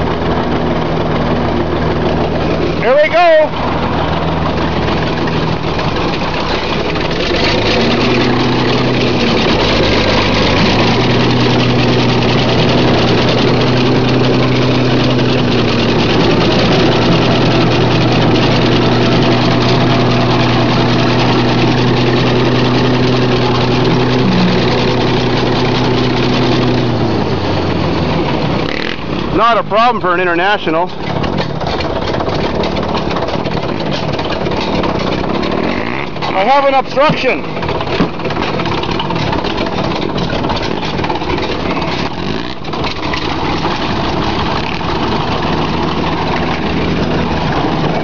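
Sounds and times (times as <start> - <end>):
bulldozer engine under load: 0.0 - 48.0.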